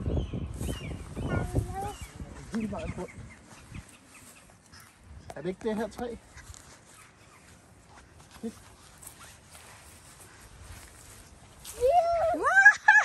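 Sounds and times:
child's excited exclamation: 0:11.7 - 0:12.8.

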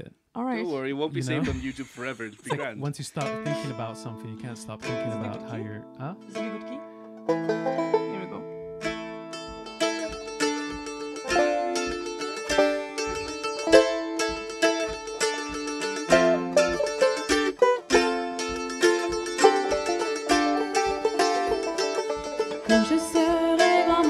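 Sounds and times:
banjo and mandolin folk tune: 0:00.4 - 0:01.6, 0:02.5 - 0:24.0.

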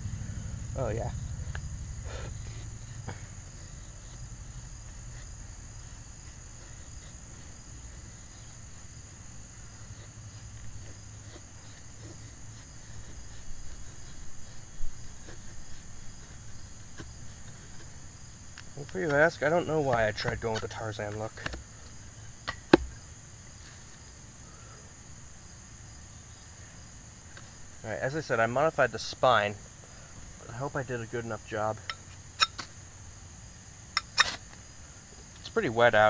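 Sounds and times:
high-pitched insect buzz: 0:00.0 - 0:18.8, 0:31.9 - 0:35.4
knife shaving wood: 0:02.1 - 0:23.0.

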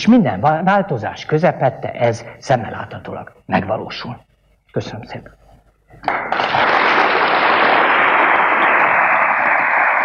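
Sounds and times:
audience applauding: 0:06.1 - 0:10.0.

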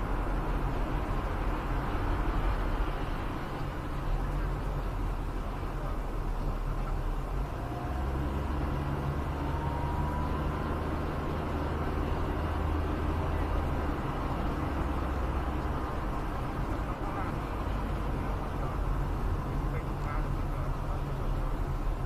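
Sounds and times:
car engine and tyre noise: 0:00.0 - 0:22.0.

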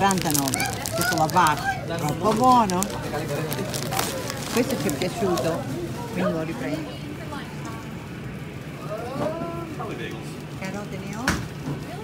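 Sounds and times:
low hum of shop noise: 0:00.0 - 0:12.0.

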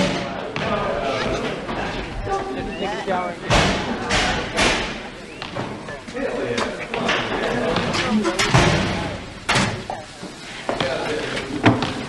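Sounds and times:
metal locker door slamming: 0:03.5 - 0:05.8, 0:07.1 - 0:09.9.

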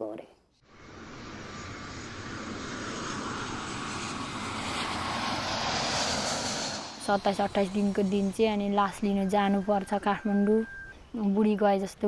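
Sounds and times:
jet airliner engines roaring: 0:00.7 - 0:11.0.

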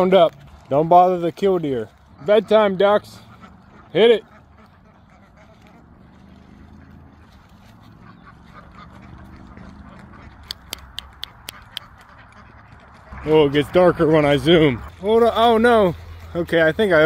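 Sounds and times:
ducks quacking: 0:00.0 - 0:17.0
sharp clicks: 0:10.3 - 0:12.4.

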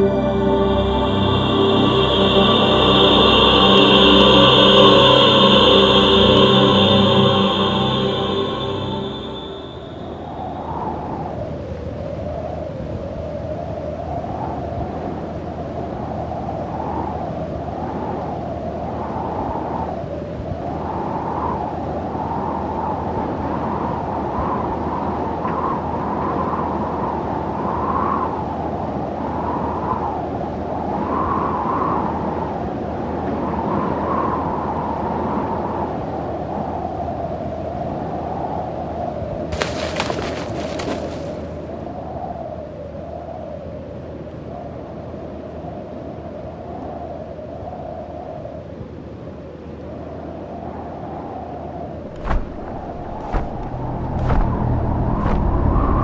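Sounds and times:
wind blowing: 0:00.0 - 0:43.6, 0:50.2 - 0:56.0.

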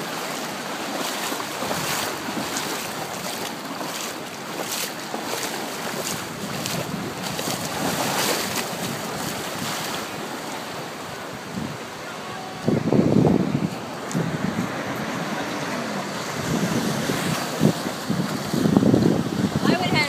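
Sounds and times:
ocean surf breaking: 0:00.0 - 0:20.0
wind buffeting microphone: 0:05.7 - 0:20.0.

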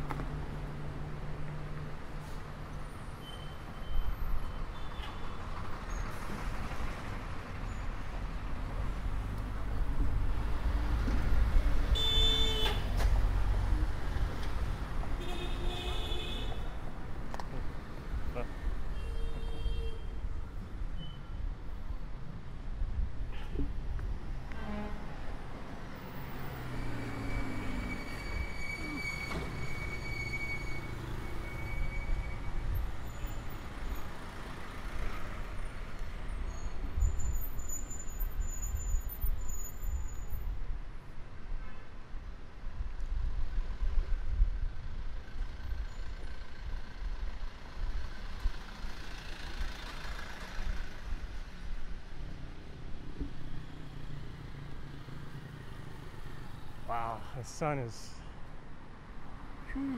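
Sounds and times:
motor vehicles passing: 0:45.4 - 0:58.2.

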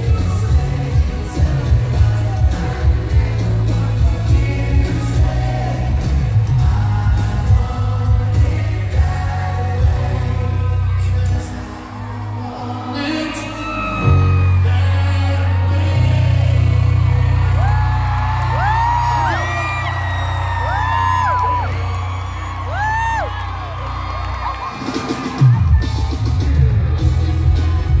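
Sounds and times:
fans whooping and screaming: 0:00.0 - 0:28.0.

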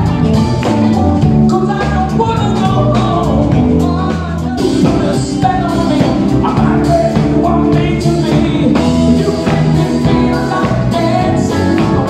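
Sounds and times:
man singing: 0:00.0 - 0:12.0
pop-rock band playing: 0:00.0 - 0:12.0.

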